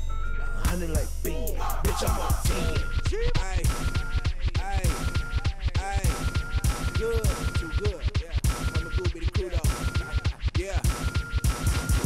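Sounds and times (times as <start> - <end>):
heavy hip hop bass beat: 0.0 - 12.0
turntable scratch sweeps: 0.9 - 2.8.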